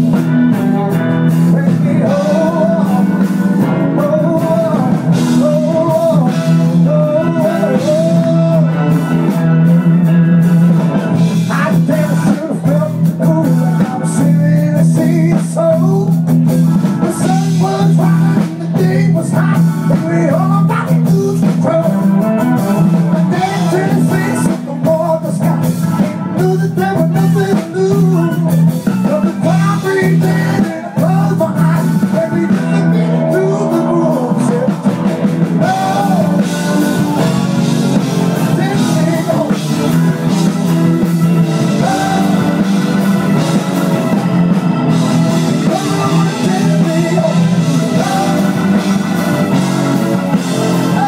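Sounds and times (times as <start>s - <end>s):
drums: 0.0s - 51.0s
electric guitars: 0.0s - 51.0s
steady bass line: 0.0s - 51.0s.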